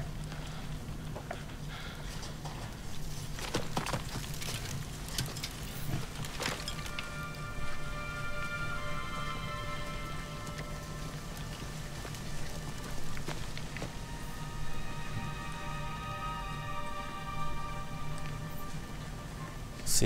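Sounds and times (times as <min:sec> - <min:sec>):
noise bed: 0:00.0 - 0:20.0
held musical notes: 0:05.3 - 0:20.0.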